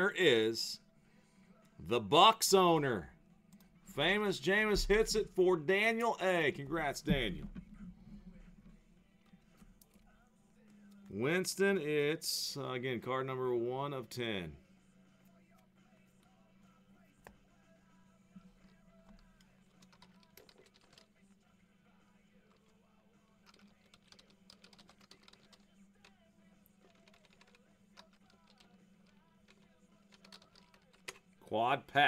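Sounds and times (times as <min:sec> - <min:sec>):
keyboard typing: 0:18.6 - 0:21.1, 0:23.4 - 0:26.2, 0:26.8 - 0:31.2.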